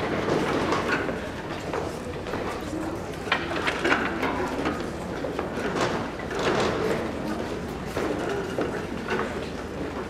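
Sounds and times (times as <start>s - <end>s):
general murmur: 0.0s - 10.0s.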